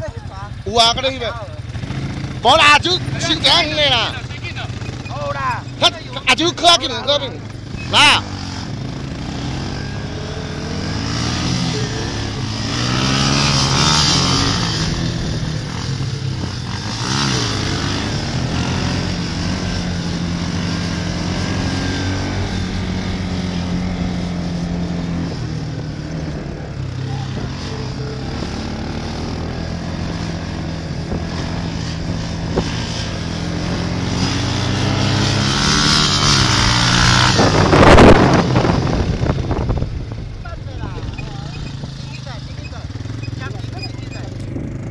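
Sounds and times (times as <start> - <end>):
quad bike engine revving: 0.0 - 44.9.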